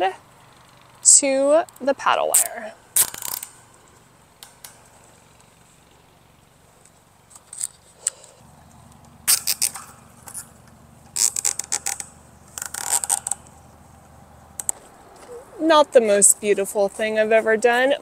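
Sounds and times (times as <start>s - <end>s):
zip ties ratcheting clicks: 2.4s - 3.6s, 9.3s - 10.5s, 11.1s - 13.6s.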